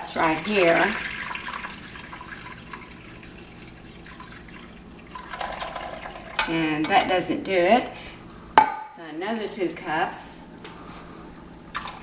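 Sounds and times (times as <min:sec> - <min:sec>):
water pouring into ceramic pot: 0:00.1 - 0:06.4.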